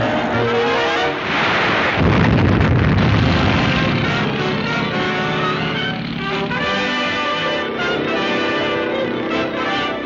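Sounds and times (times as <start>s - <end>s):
orchestral brass and strings: 0.0s - 2.0s, 3.2s - 10.0s
rising rushing water effect: 0.8s - 4.8s.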